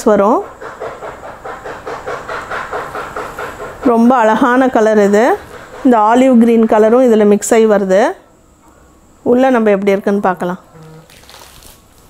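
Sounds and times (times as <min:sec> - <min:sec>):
fabric rustling: 0:10.8 - 0:12.0.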